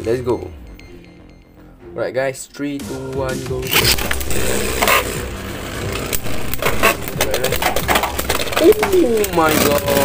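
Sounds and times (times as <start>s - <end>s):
spinning tops grinding on plastic: 3.7s - 10.0s.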